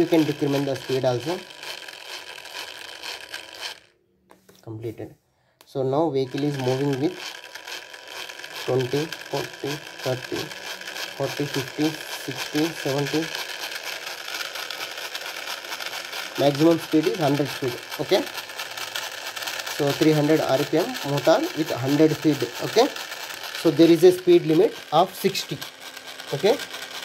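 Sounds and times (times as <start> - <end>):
small electric motor whirring: 0.0 - 4.5, 6.0 - 27.0.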